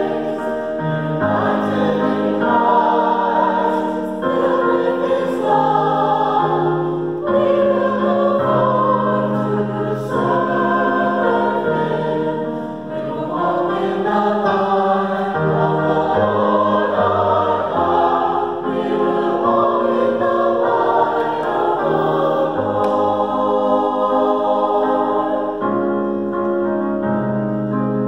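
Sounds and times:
choir singing in harmony: 0.0 - 28.0
digital piano accompaniment: 0.0 - 28.0.

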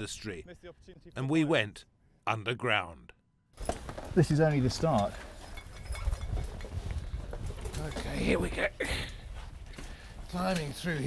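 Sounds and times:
wind rumbling on microphone: 5.5 - 9.8.

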